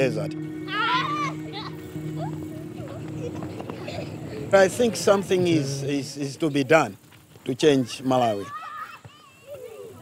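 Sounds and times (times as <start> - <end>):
faint children calling: 0.6 - 4.8, 7.6 - 10.0
children running on dirt: 2.0 - 10.0.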